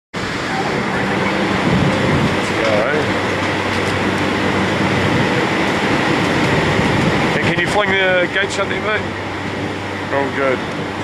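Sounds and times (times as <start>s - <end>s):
low hum: 0.2s - 11.0s
wind on microphone: 0.2s - 11.0s.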